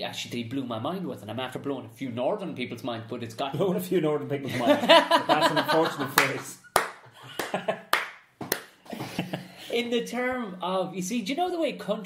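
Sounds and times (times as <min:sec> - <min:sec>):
man laughing: 0:04.5 - 0:07.9, 0:08.9 - 0:09.7.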